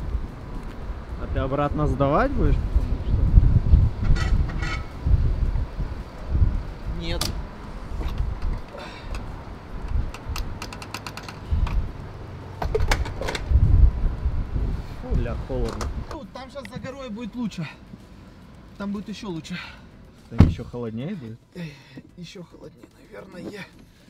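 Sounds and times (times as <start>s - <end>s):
wind buffeting microphone: 0.0s - 17.0s
fuel nozzle clicks and knocks: 8.0s - 11.8s.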